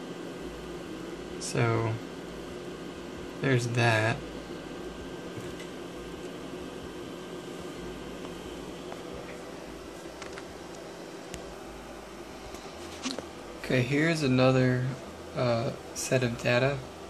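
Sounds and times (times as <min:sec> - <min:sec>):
equipment hum and hiss: 0:00.0 - 0:17.0.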